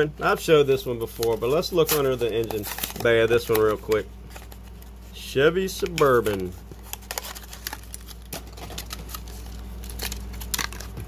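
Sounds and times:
plastic packaging crinkling: 0:00.8 - 0:11.0.

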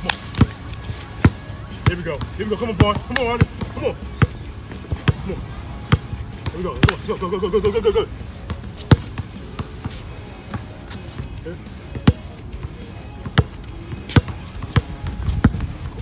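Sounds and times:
basketball bouncing on asphalt: 0:00.0 - 0:16.0.

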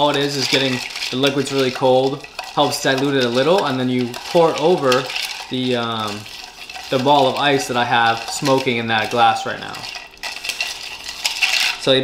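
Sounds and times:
spoon stirring ice in metal tin: 0:00.0 - 0:12.0.

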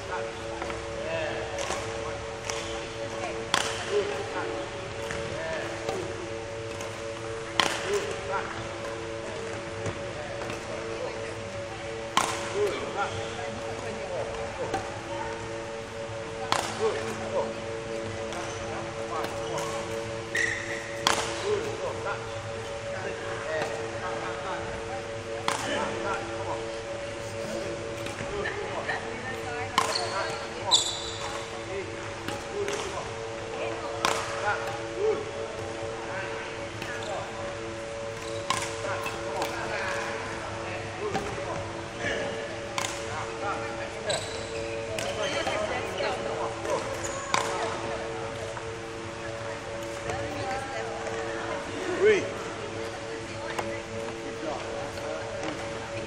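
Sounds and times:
steady low hum: 0:00.0 - 0:56.0
racket striking shuttlecock: 0:01.5 - 0:04.4, 0:05.0 - 0:10.8, 0:11.8 - 0:28.4, 0:29.6 - 0:40.4, 0:41.1 - 0:41.4, 0:42.2 - 0:43.4, 0:44.8 - 0:45.9, 0:46.6 - 0:50.3.

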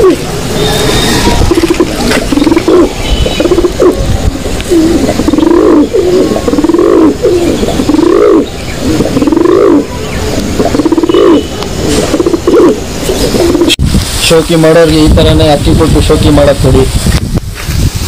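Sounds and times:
pigeons cooing: 0:00.0 - 0:13.8.

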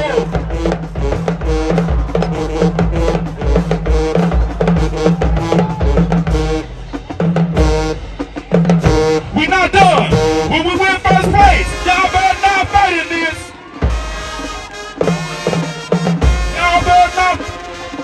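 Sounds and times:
marching band playing: 0:00.0 - 0:18.0.

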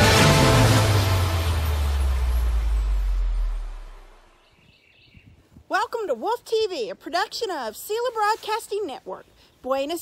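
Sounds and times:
low rumbling sound effect: 0:00.0 - 0:04.7.

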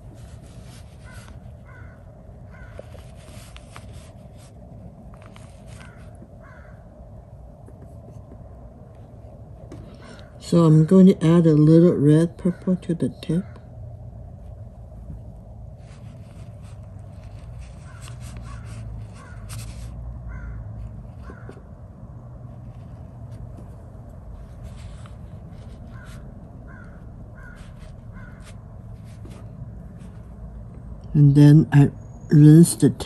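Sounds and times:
low room hum: 0:00.0 - 0:33.0
bird calling: 0:01.0 - 0:03.2, 0:05.8 - 0:06.8, 0:17.6 - 0:19.6, 0:20.3 - 0:21.6, 0:25.6 - 0:28.6.

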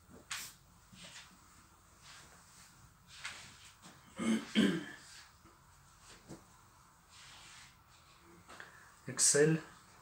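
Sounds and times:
clothing rustling: 0:00.0 - 0:04.1
person clearing throat: 0:04.1 - 0:05.0.

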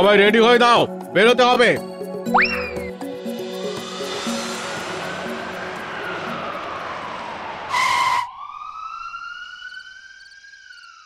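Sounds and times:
background music: 0:00.0 - 0:07.8
moving vehicle rush: 0:02.9 - 0:11.0
police siren wailing: 0:03.7 - 0:11.0.

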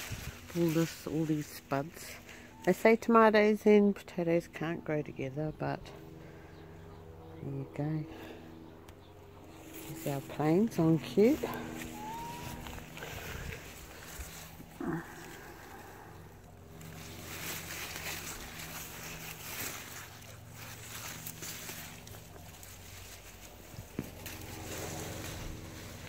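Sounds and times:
plants rustling: 0:00.0 - 0:03.3, 0:09.4 - 0:26.0
faint low hum: 0:00.0 - 0:26.0.

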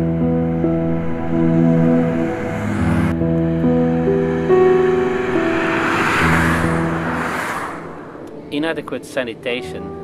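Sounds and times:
music of long held notes: 0:00.0 - 0:10.0
car passing by: 0:00.3 - 0:09.1.

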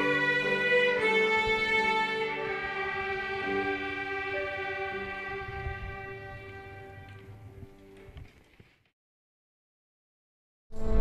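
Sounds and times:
violin ensemble sustained chord: 0:00.0 - 0:07.6.

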